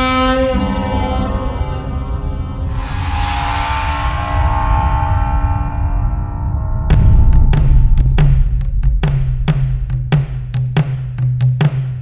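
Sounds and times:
low rumble: 0:00.8 - 0:10.8.

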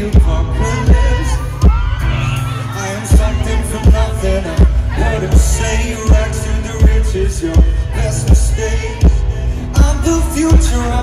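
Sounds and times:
heavy kick drum beating: 0:00.0 - 0:02.0, 0:03.1 - 0:11.0
live band music: 0:00.0 - 0:11.0.

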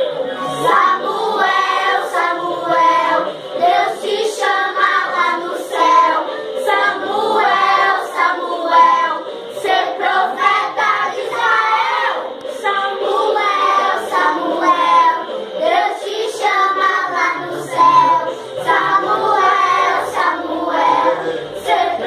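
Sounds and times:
children singing a praise song: 0:00.0 - 0:22.0.

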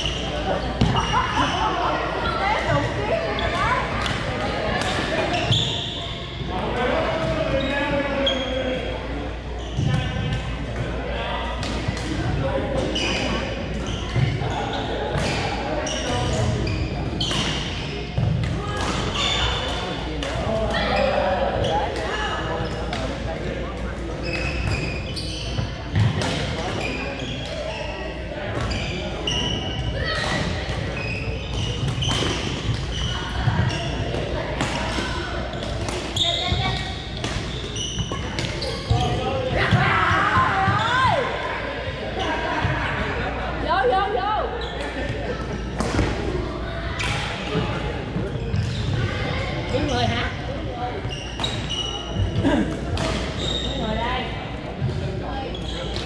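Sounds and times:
babble of voices: 0:00.0 - 0:56.0
shoe squeaks on wooden floor: 0:05.3 - 0:06.2, 0:36.2 - 0:39.3, 0:51.0 - 0:52.4, 0:53.2 - 0:54.0.

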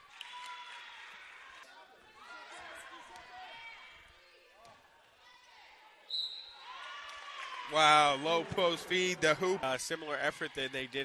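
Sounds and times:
players' voices: 0:07.7 - 0:11.0.

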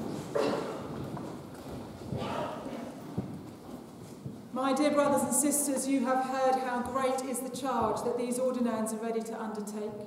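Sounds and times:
footsteps on hard floor: 0:00.0 - 0:04.5.

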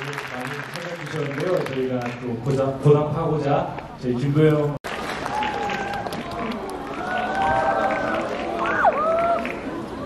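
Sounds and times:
audience chattering and calling out: 0:03.3 - 0:10.0.

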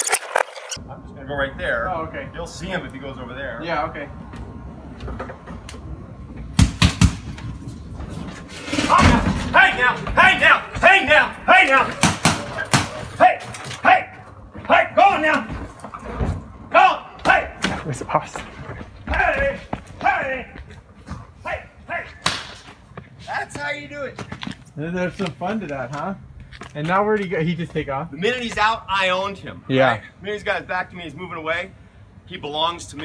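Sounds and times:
man shouting: 0:08.9 - 0:12.0, 0:13.1 - 0:15.5, 0:16.7 - 0:17.6, 0:19.1 - 0:20.6, 0:21.4 - 0:22.2.

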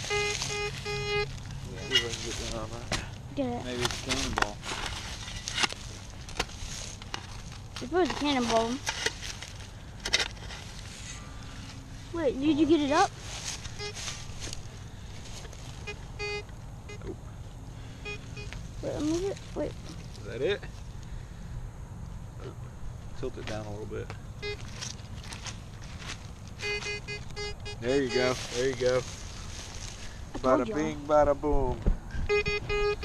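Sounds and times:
metal detector short beeps: 0:00.0 - 0:02.2, 0:13.7 - 0:14.1, 0:15.8 - 0:17.1, 0:18.0 - 0:18.5, 0:24.4 - 0:24.6, 0:26.6 - 0:28.4, 0:32.3 - 0:33.0
metal shovel scraping into dirt: 0:01.8 - 0:03.1, 0:03.7 - 0:06.8
wind rumble on microphone: 0:31.4 - 0:33.0.

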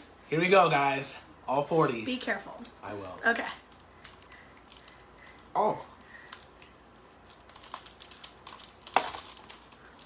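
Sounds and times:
crisps crinkling and clicking: 0:03.7 - 0:10.0.

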